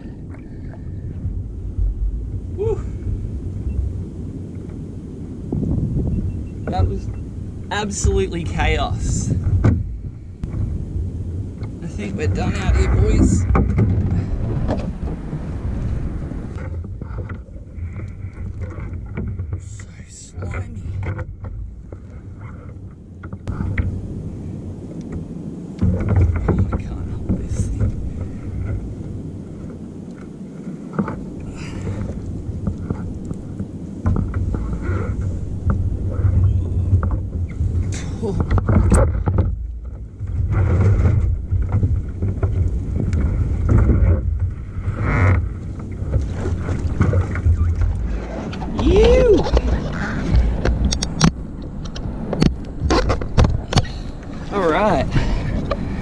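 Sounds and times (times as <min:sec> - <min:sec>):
water slapping plastic kayak: 0:00.0 - 0:56.0
wind buffeting microphone: 0:00.0 - 0:56.0
knocks and rustles: 0:09.4 - 0:10.8, 0:12.9 - 0:15.4, 0:25.8 - 0:28.8, 0:31.9 - 0:54.0.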